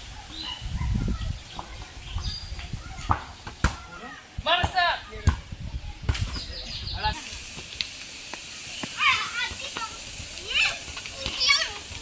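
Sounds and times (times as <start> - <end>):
children shouting: 2.7 - 4.4
ball being kicked: 4.6 - 6.5.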